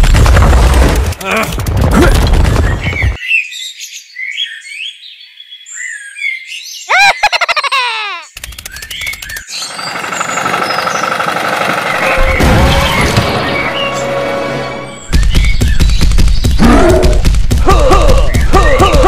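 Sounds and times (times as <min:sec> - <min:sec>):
birds chirping: 0:02.2 - 0:19.0
rapid rattle of clicks: 0:08.3 - 0:12.1.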